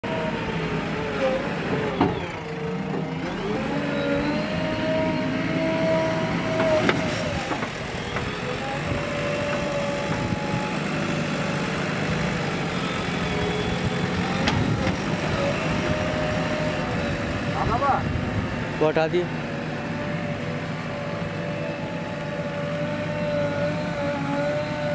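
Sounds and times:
diesel engine under load: 0.0 - 24.9.

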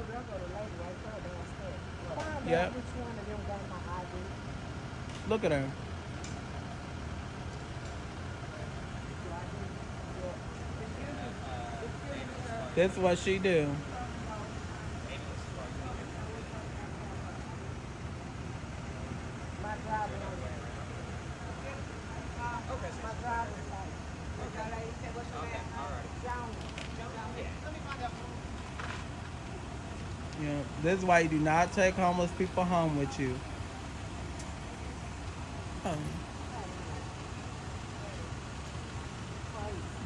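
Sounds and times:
vehicle engines idling: 0.0 - 40.0.

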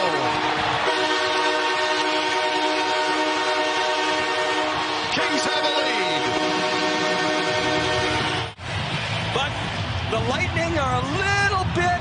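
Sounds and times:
arena goal horn: 0.0 - 8.5
crowd noise: 0.0 - 12.0
commentator speaking: 5.1 - 6.4, 10.1 - 12.0.

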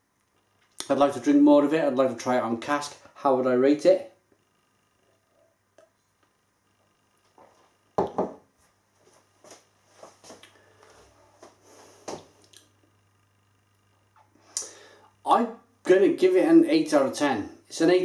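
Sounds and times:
man speaking: 0.8 - 4.2, 15.2 - 18.0
man breathing in: 14.4 - 15.2.

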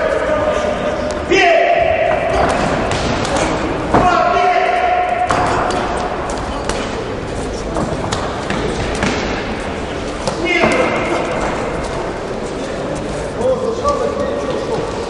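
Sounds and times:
crowd voices in echoing hall: 0.0 - 15.0.

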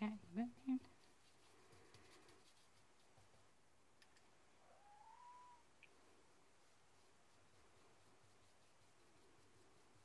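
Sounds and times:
cat meowing faintly: 4.6 - 5.8.

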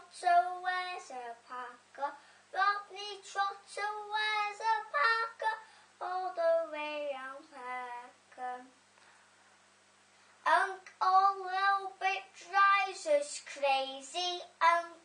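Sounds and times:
girl singing unaccompanied: 0.0 - 8.9, 10.4 - 15.0.

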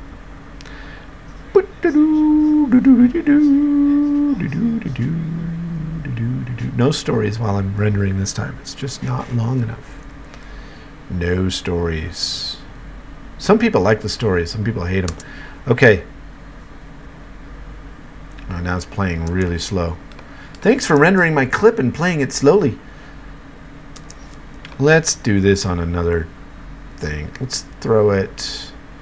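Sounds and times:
low hum and faint hiss: 0.0 - 29.0
man humming: 1.4 - 9.6.

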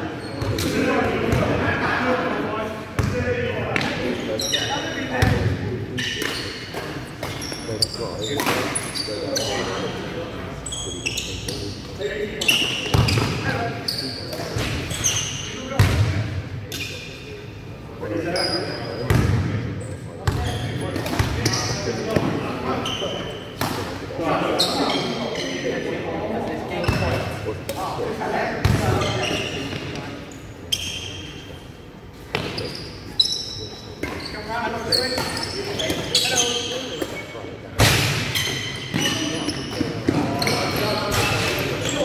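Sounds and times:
players' voices: 0.0 - 42.0
basketball bouncing on hall floor: 12.8 - 13.5, 15.8 - 16.2, 19.1 - 19.6.

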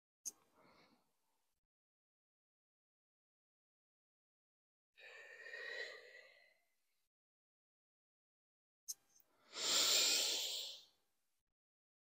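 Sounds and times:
woman breathing: 5.0 - 6.8, 9.3 - 11.0.

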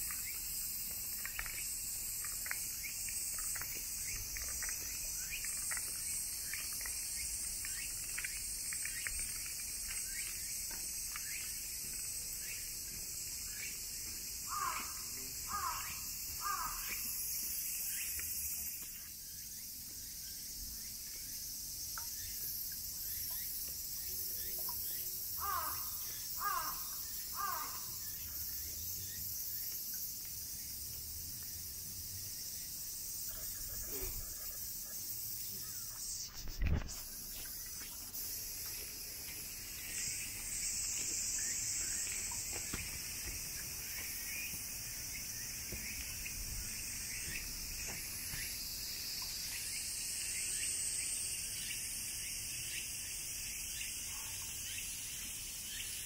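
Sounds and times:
insects droning: 0.0 - 56.0
crow cawing: 14.5 - 17.0, 25.4 - 28.0.

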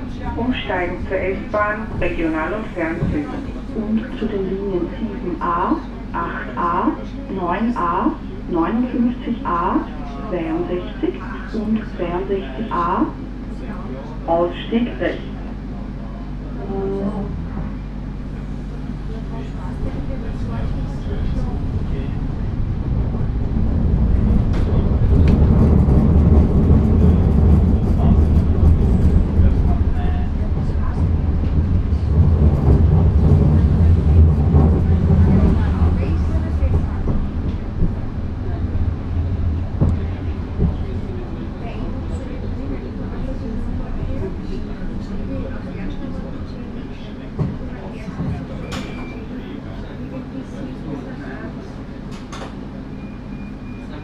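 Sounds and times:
light-rail car running hum and rumble: 0.0 - 54.0.

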